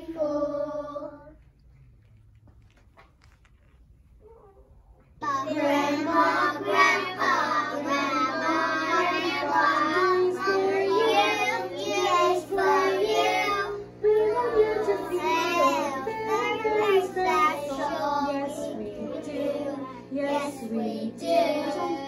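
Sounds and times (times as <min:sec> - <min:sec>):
young children singing: 0:00.0 - 0:01.4, 0:05.2 - 0:22.0.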